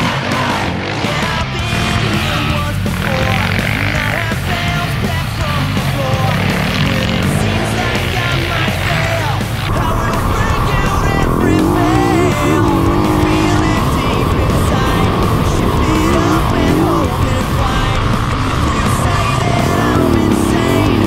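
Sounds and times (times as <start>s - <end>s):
dirt bike engine revving: 0.0s - 21.0s
music with singing voice: 0.0s - 21.0s.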